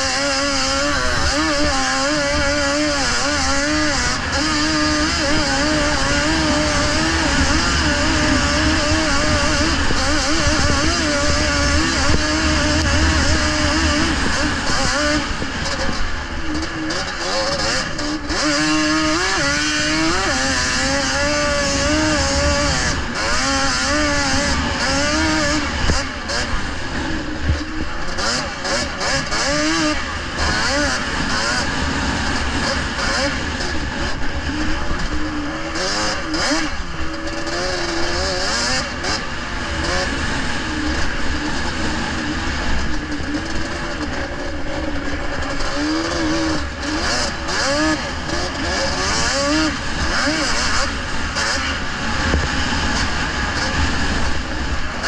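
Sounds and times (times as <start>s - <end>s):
kart engine revving: 0.0s - 55.0s
wind and track noise: 0.0s - 55.0s.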